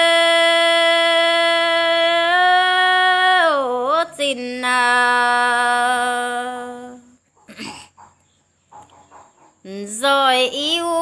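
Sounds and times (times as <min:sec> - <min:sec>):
woman singing: 0:00.0 - 0:07.2, 0:09.7 - 0:11.0
faint animal sounds: 0:07.1 - 0:10.0.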